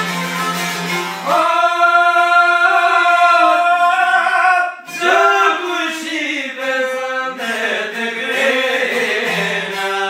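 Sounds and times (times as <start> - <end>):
bowed string line: 0.0 - 1.3
man singing a long note: 1.2 - 7.4.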